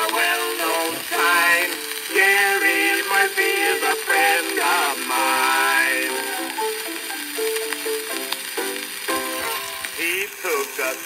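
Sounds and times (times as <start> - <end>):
old band recording playing: 0.0 - 11.0
record surface hiss: 0.0 - 11.0.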